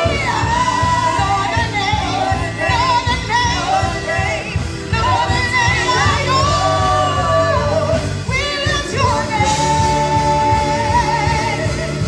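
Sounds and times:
band with steady beat: 0:00.0 - 0:12.0
group singing worship song: 0:00.0 - 0:12.0.

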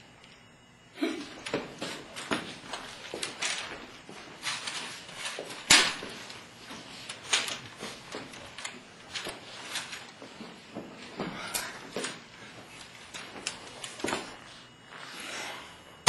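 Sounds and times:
shuffling footsteps on hard floor: 0:01.4 - 0:15.1.

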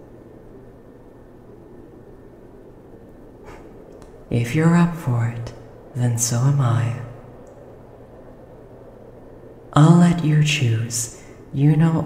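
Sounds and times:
faint steady hiss: 0:00.0 - 0:12.0
person speaking: 0:04.3 - 0:07.3, 0:09.8 - 0:12.0.

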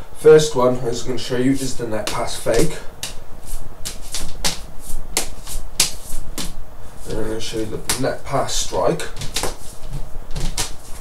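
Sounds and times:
nunchaku slaps and swishes: 0:01.6 - 0:06.6, 0:09.1 - 0:11.0.

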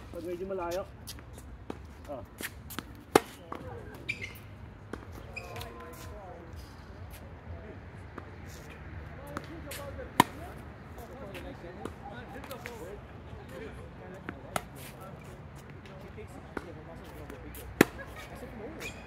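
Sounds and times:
tennis balls bouncing: 0:01.1 - 0:06.0, 0:09.2 - 0:10.6, 0:14.2 - 0:14.9, 0:16.5 - 0:19.0
tennis balls struck by rackets: 0:01.1 - 0:06.0, 0:09.2 - 0:10.6, 0:14.2 - 0:15.0, 0:16.5 - 0:19.0.

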